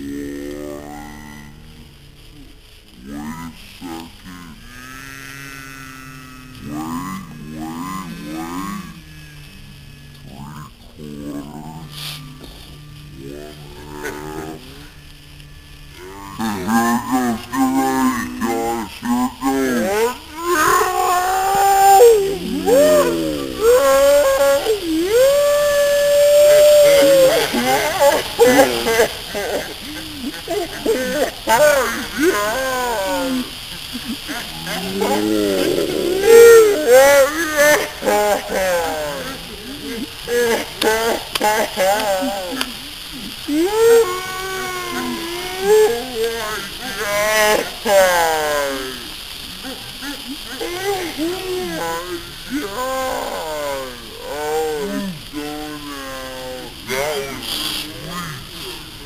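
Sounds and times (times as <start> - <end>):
people making wordless vocal sounds: 0.0 - 4.7, 5.8 - 59.0
sparklers hissing: 0.0 - 59.0.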